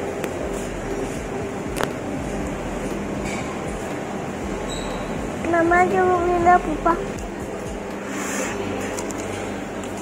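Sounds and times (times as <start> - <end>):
shop floor hum and hiss: 0.0 - 10.0.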